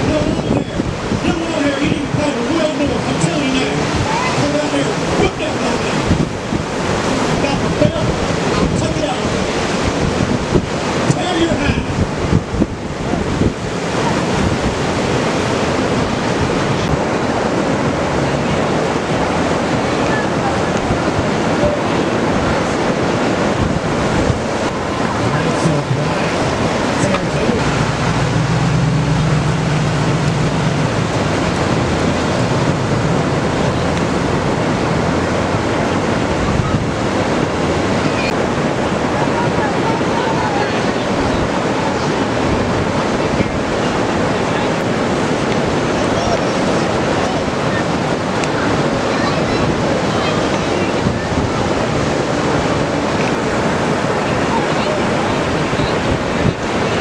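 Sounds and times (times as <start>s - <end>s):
ocean surf breaking: 0.0s - 57.0s.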